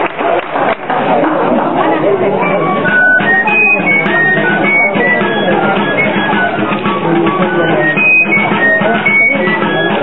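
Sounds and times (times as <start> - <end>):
shrill wind instrument melody: 2.3 - 10.0
drum playing: 2.4 - 10.0.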